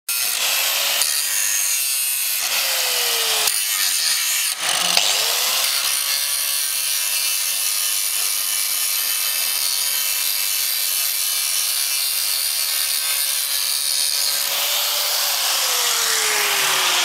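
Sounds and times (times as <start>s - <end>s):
grinder grinding metal: 0.1s - 17.0s.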